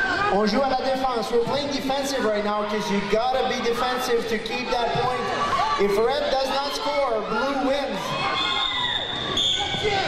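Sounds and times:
crowd noise: 0:00.0 - 0:10.0
referee's whistle blast: 0:08.6 - 0:09.8.

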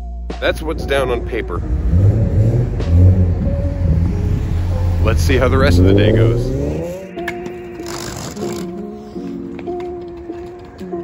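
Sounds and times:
low rumble of traffic: 0:00.6 - 0:07.1
car driving past: 0:00.7 - 0:07.3.

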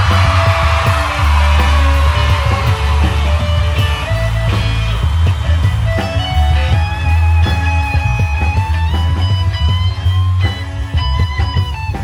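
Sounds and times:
drum kit beat: 0:00.0 - 0:12.0
electric guitar lead notes: 0:00.0 - 0:12.0
heavy bass: 0:00.0 - 0:12.0
live rock band playing: 0:00.0 - 0:12.0.

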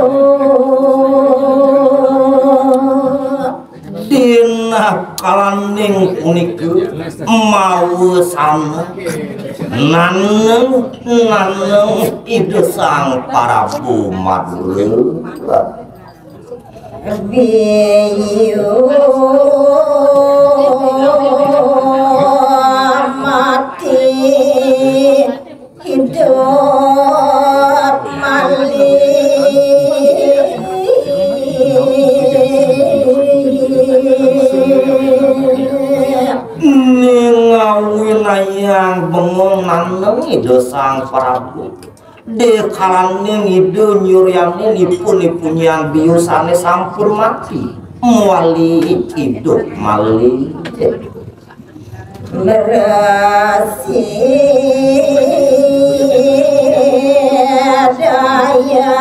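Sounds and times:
woman singing a long note: 0:17.1 - 0:36.6.

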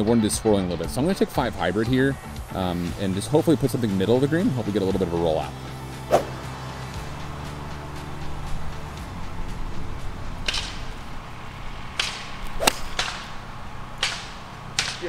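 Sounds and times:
golf club striking ball: 0:06.0 - 0:06.4, 0:10.1 - 0:15.0
club swishes: 0:06.1 - 0:06.4, 0:12.5 - 0:13.2.

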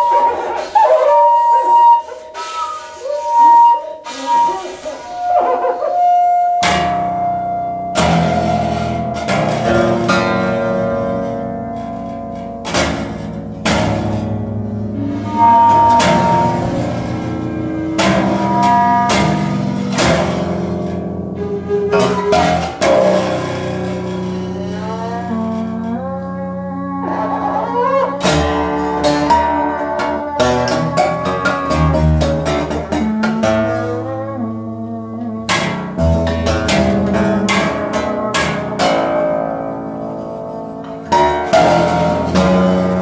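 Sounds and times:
shakuhachi flute: 0:00.0 - 0:09.3, 0:14.8 - 0:36.9
acoustic guitar: 0:00.0 - 0:43.0
long held note falling in pitch: 0:14.7 - 0:32.2.

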